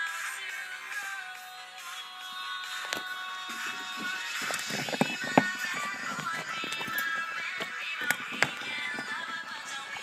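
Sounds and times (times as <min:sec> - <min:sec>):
pop song with vocal: 0:00.0 - 0:10.0.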